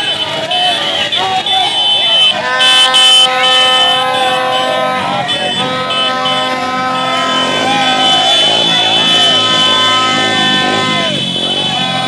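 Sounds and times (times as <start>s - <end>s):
vuvuzela drone: 0.0s - 12.0s.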